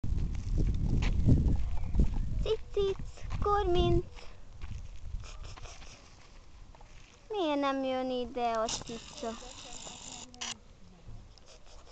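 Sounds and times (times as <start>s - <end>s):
low rumble on microphone: 0.0s - 5.5s
footsteps on gravel: 2.5s - 7.8s.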